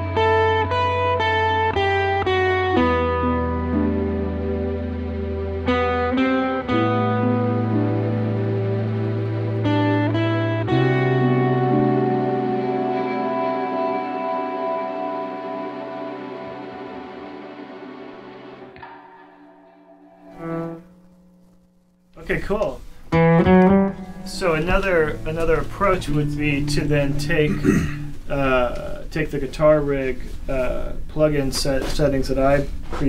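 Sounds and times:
acoustic guitar melody: 0:00.0 - 0:31.1
backing track with bass notes: 0:00.0 - 0:33.0.

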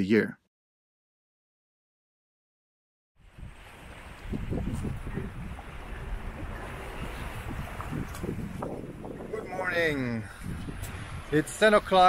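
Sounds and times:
sea water washing along hull: 0:03.2 - 0:12.0
wind buffeting microphone: 0:03.2 - 0:12.0.

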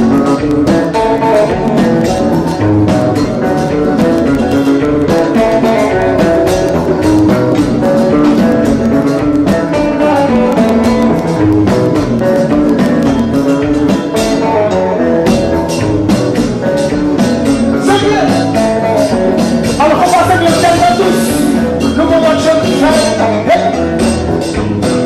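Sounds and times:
guitar lines: 0:00.0 - 0:25.0
steady drum beat: 0:00.0 - 0:25.0.

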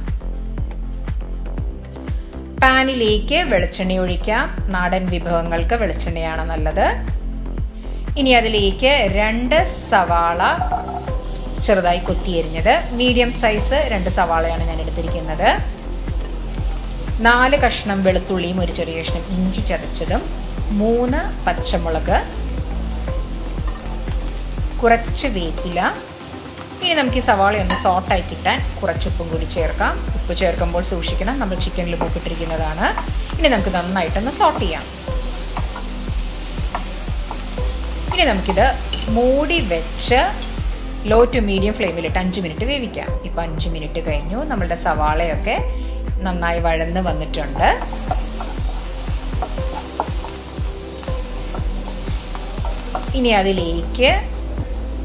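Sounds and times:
vegetables sizzling in oil: 0:10.4 - 0:43.1, 0:43.8 - 0:45.5, 0:46.9 - 0:55.0.

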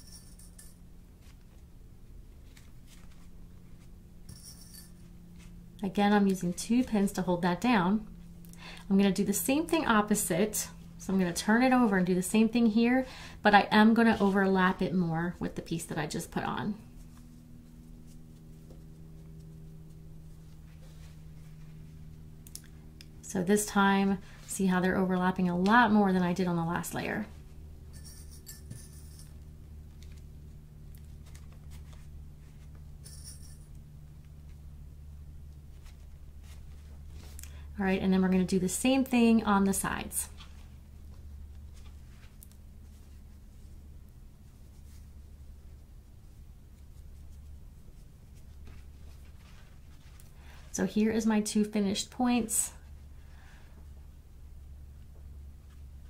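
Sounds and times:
low steady hum: 0:00.0 - 0:56.0
fabric and pins rustling: 0:02.3 - 0:07.2.

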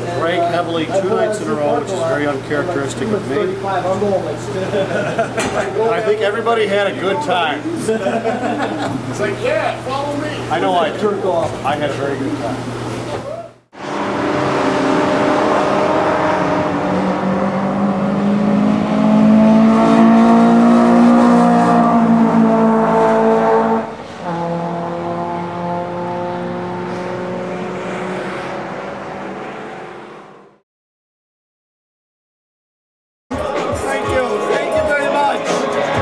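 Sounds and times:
racing car engines at high revs: 0:13.7 - 0:30.6.

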